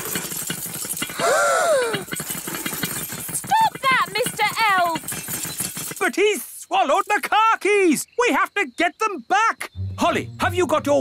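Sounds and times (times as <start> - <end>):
wavering cry: 1.2 - 2.1.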